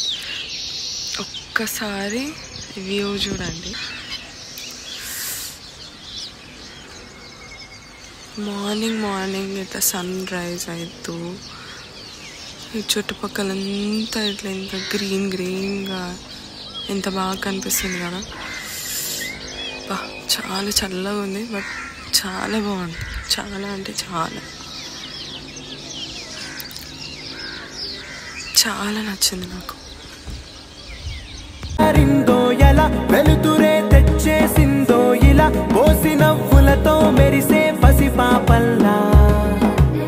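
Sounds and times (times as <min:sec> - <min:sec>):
birds chirping: 0:00.0 - 0:40.0.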